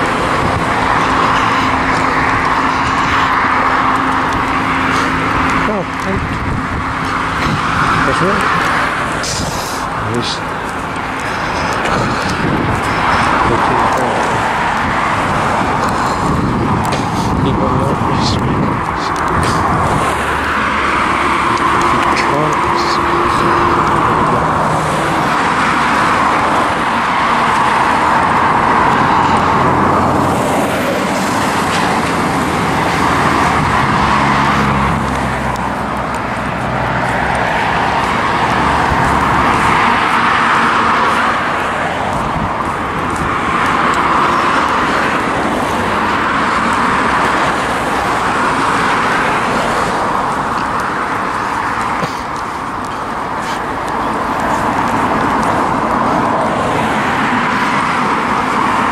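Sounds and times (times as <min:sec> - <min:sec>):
cars passing: 0:00.0 - 0:58.9.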